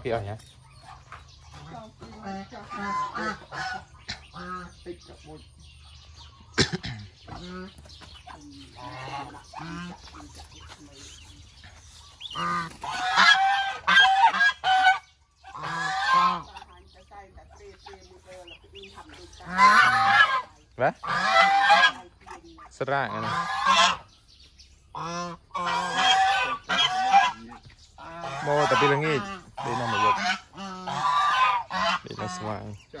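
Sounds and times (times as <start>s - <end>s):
geese honking: 0.0s - 24.2s, 24.9s - 33.0s.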